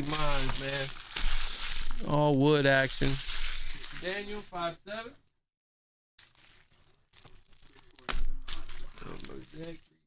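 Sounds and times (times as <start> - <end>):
foil pack rustling: 0.0 - 4.6, 6.2 - 10.0
person speaking: 2.0 - 5.2.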